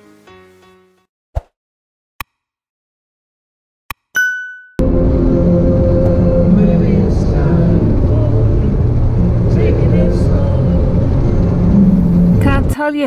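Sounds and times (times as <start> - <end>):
van driving at highway speed: 4.8 - 12.7.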